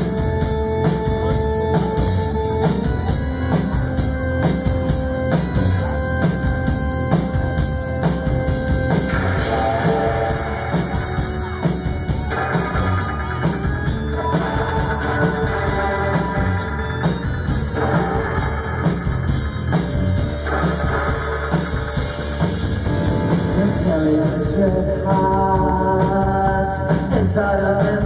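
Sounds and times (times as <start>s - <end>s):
rock band playing: 0.0s - 28.0s.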